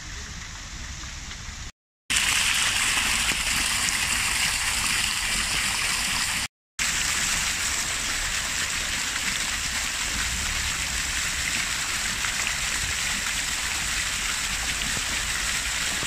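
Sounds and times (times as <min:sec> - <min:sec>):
fountain water splashing: 0:02.1 - 0:16.0.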